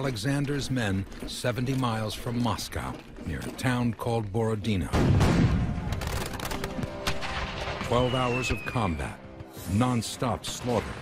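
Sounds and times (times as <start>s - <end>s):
musket gunfire crackle: 4.9s - 8.3s.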